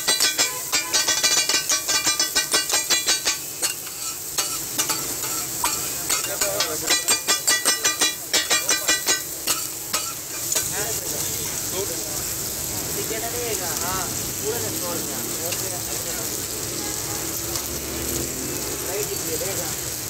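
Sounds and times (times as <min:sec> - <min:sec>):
metal spatulas clattering on griddle: 0:00.0 - 0:11.0, 0:15.5 - 0:15.7
food sizzling: 0:00.0 - 0:20.0.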